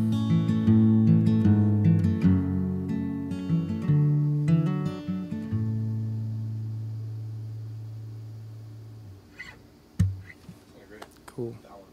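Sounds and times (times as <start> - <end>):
acoustic guitar chord ringing: 0.0 - 10.4.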